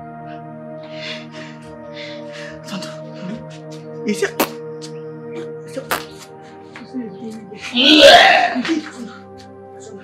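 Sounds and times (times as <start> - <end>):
background music with held notes: 0.0 - 10.0
person's loud vocal outburst: 7.8 - 8.7.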